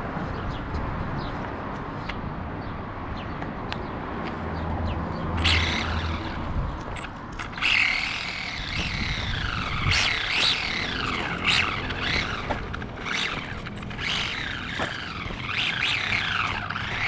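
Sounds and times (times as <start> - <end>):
toy car electric motor whining: 5.4 - 17.0.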